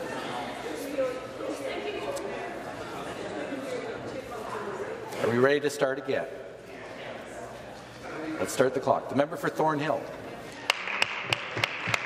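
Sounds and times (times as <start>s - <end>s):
crowd applause: 10.6s - 12.0s
sharp single claps: 10.7s - 12.0s.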